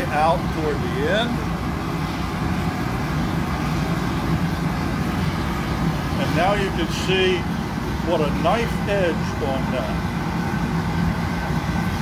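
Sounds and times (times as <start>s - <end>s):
furnace and blower rushing: 0.0s - 12.0s.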